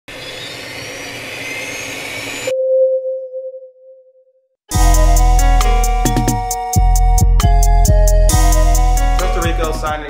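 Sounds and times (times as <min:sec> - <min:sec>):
faint rising whistles: 0:00.1 - 0:02.6
pure tone: 0:00.2 - 0:09.1.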